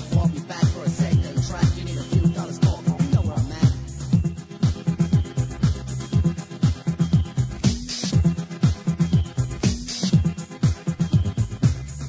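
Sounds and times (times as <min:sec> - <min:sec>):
dance music: 0:00.0 - 0:12.0.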